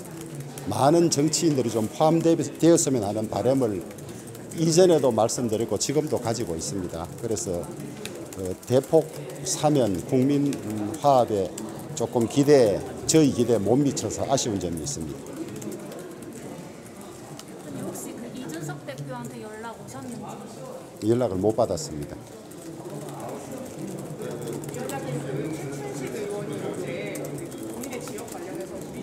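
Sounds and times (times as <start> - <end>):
faint murmur of voices: 0.0 - 29.0
people chattering: 0.0 - 29.0.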